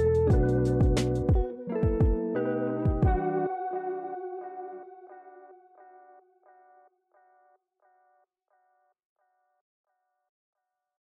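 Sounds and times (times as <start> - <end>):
guitar chord with echo: 0.0 - 6.9.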